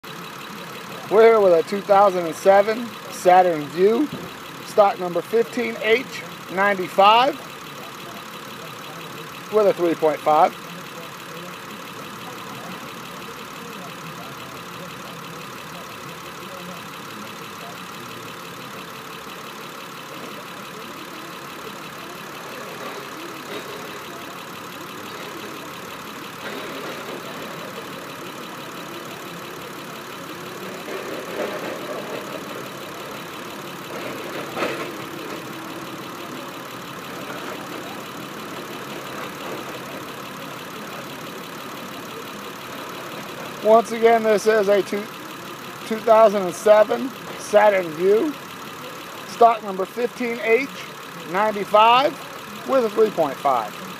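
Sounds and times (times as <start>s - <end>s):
car engine idling: 0.0s - 53.9s.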